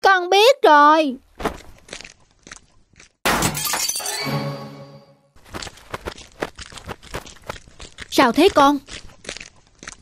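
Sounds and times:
cartoon footsteps: 1.2 - 3.6, 5.4 - 10.0.

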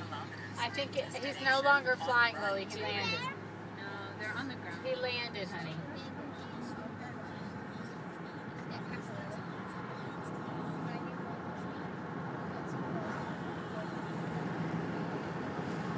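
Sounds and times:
car engine hum: 0.0 - 15.9.

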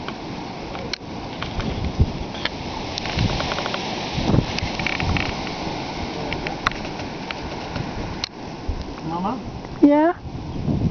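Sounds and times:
wind howling on microphone: 0.0 - 10.9.

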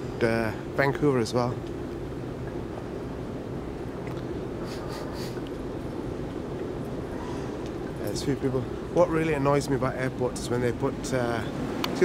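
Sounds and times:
moving walkway rumble and hum: 0.0 - 12.0.

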